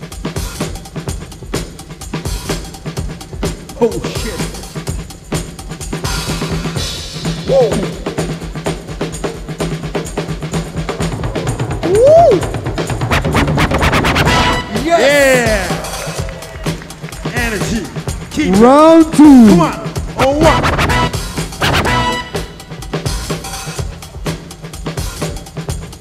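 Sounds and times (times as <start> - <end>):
hip-hop breakbeat music: 0.0 - 26.0.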